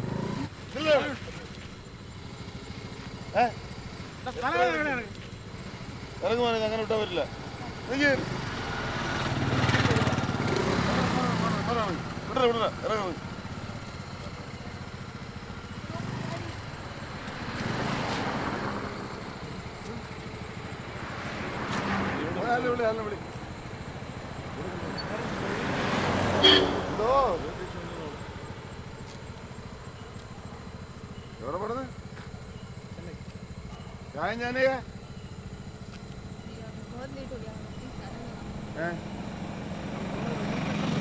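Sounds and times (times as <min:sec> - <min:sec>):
scooter engine idling: 0:00.0 - 0:41.0
men's raised voices: 0:00.7 - 0:01.5, 0:03.3 - 0:05.1, 0:09.4 - 0:13.3.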